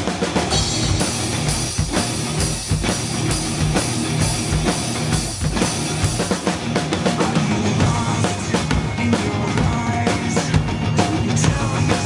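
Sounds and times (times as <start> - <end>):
drum kit played hard: 0.0 - 12.0
rock backing track: 0.0 - 12.0.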